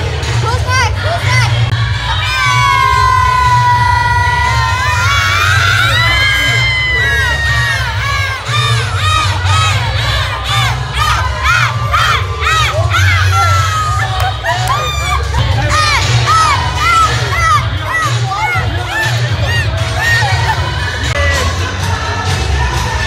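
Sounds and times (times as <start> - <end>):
loud music with heavy bass: 0.0 - 23.0
people whooping and cheering: 1.8 - 21.8.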